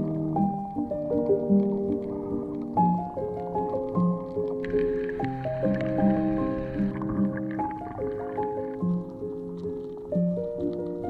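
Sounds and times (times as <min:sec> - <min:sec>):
gentle instrumental melody: 0:00.0 - 0:11.0.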